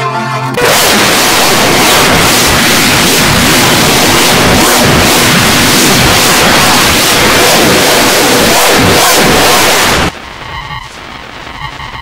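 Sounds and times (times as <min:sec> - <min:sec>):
warbling sweeps: 0:00.6 - 0:10.1
harsh distorted hiss: 0:00.6 - 0:12.0.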